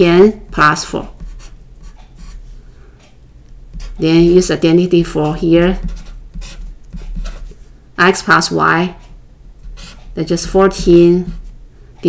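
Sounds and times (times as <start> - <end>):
marker pen scratching on paper: 0.5 - 2.5, 3.7 - 7.6, 9.6 - 11.6.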